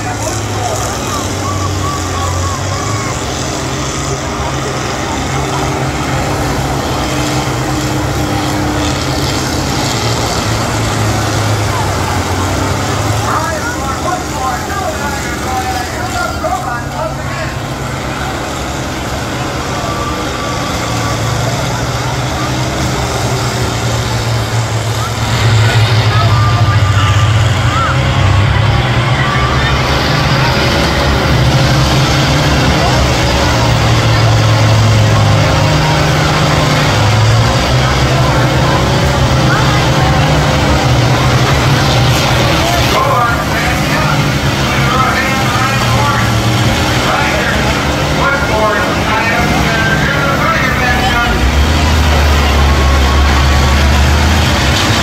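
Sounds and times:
combine harvester engines droning: 0:00.0 - 0:55.0.

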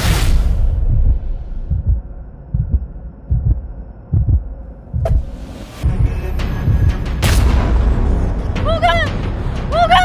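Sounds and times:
heartbeat thumps: 0:00.8 - 0:07.1.

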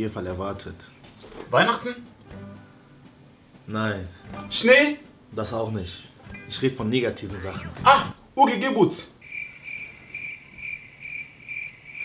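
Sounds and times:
cricket chirping: 0:09.2 - 0:12.0.

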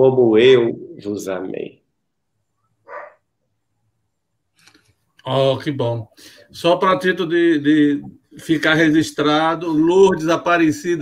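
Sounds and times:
faint dog bark: 0:02.6 - 0:03.4.

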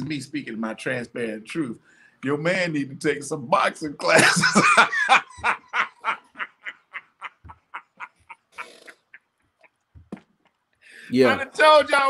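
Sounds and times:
man laughing hard: 0:04.1 - 0:09.2.

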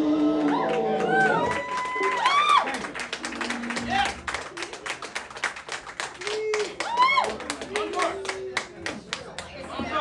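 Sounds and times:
people clapping: 0:00.0 - 0:10.0.

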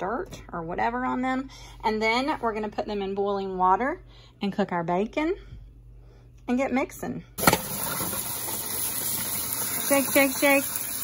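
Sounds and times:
faucet running water into colander: 0:07.4 - 0:11.0.

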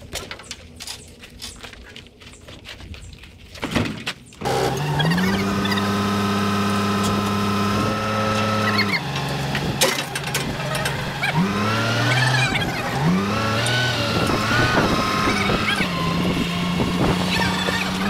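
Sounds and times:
forklift engine revving: 0:04.4 - 0:18.0.

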